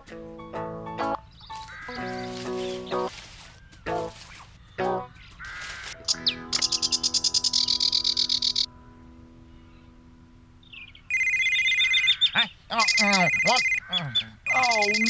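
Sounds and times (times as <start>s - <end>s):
high chirping bird trill: 1.2s - 8.7s, 10.6s - 15.0s
cartoon music held notes: 3.8s - 5.2s
mobile phone ringtone: 6.0s - 8.7s, 11.1s - 12.2s, 12.8s - 13.9s, 14.5s - 15.0s.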